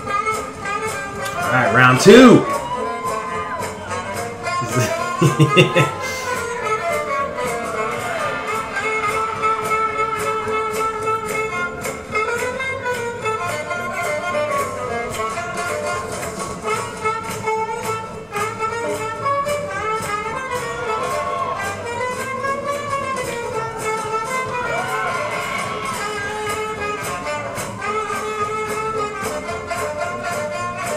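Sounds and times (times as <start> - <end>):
swing jazz band: 0.0 - 30.9.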